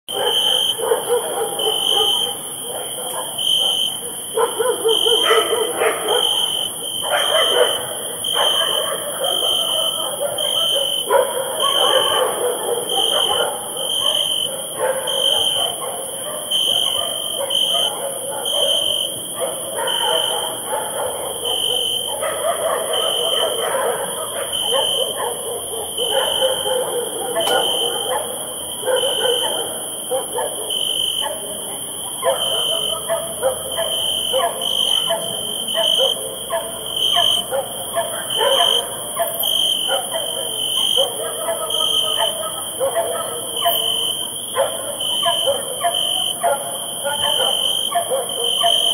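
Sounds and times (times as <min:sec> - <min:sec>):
cricket chirping: 0:00.1 - 0:48.9
dogs barking: 0:00.1 - 0:48.9.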